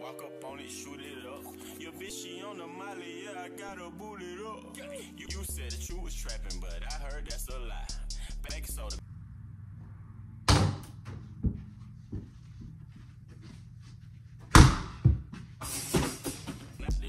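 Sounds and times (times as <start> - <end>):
faint music: 0.0 - 9.1.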